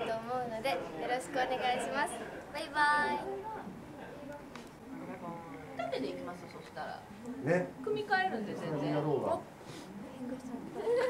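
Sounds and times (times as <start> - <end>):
young girl speaking: 0.0 - 3.6.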